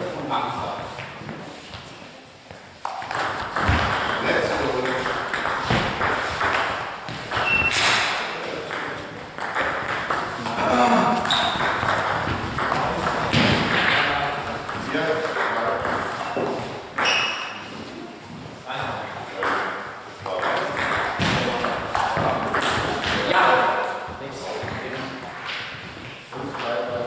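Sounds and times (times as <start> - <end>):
voices in a hall: 0.0 - 27.0.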